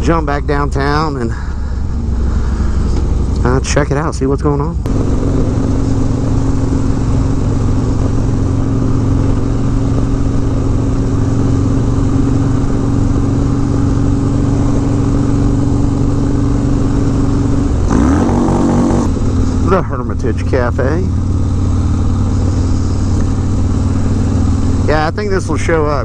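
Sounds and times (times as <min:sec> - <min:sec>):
motorcycle engine cruising: 0:00.0 - 0:26.0
wind and road noise: 0:00.0 - 0:26.0.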